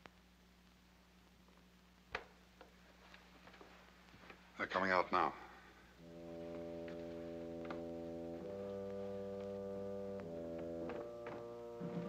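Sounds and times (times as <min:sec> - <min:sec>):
orchestral brass chord: 0:06.0 - 0:12.0.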